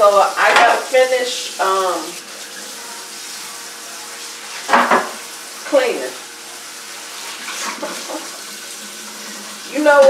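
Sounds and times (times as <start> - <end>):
faucet running into metal sink: 0.0 - 10.0.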